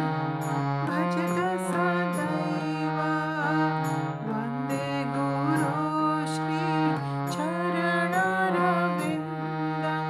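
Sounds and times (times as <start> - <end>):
harmonium playing slow melody: 0.0 - 10.0.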